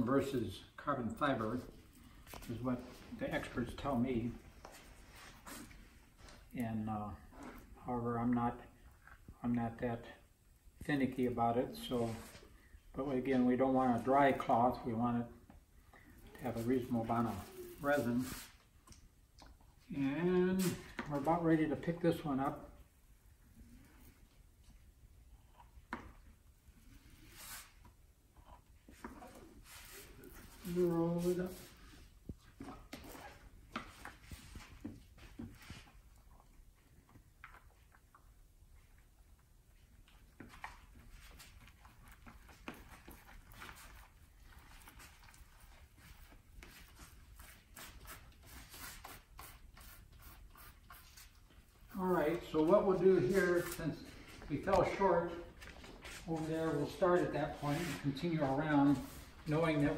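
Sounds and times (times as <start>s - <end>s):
stick scraping over cloth: 16.4s - 18.6s, 55.8s - 59.9s.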